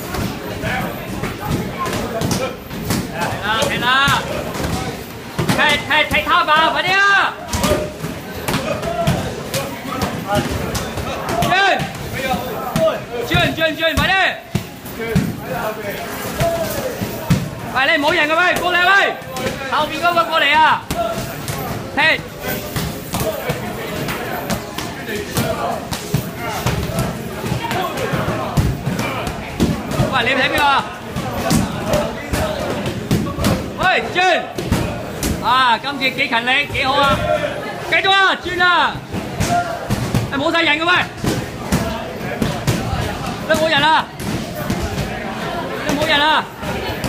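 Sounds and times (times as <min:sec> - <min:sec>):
voices of class: 0:00.0 - 0:47.0.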